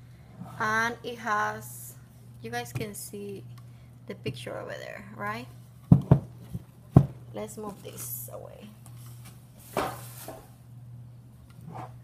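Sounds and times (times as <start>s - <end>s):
steady low hum: 0.0s - 12.0s
knock on desktop: 5.9s - 6.3s.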